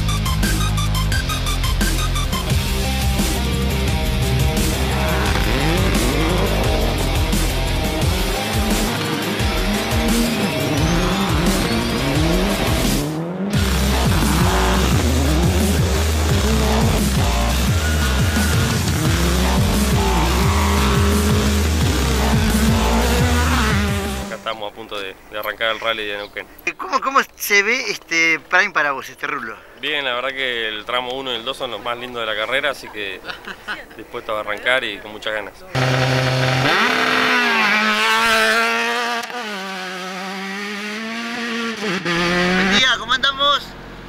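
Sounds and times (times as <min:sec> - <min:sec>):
electronic music with heavy bass: 0:00.0 - 0:24.4
rally car engines revving: 0:01.3 - 0:24.6, 0:35.8 - 0:44.0.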